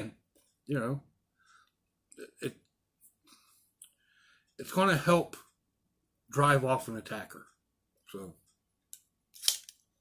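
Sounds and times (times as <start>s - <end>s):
man speaking: 0.0s - 1.1s, 4.6s - 5.5s, 6.3s - 8.5s
faint breaths: 1.2s - 2.0s, 3.1s - 4.6s.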